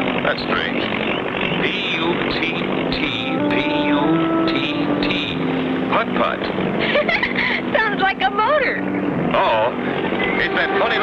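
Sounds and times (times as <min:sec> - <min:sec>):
held musical notes: 0:00.0 - 0:11.0
propeller plane engine droning: 0:00.0 - 0:11.0.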